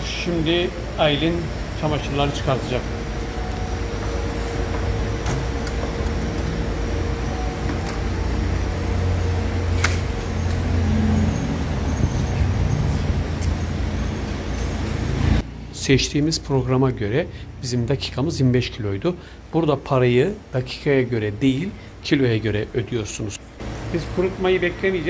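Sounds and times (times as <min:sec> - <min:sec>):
low rumble of running machines: 0:00.0 - 0:25.0.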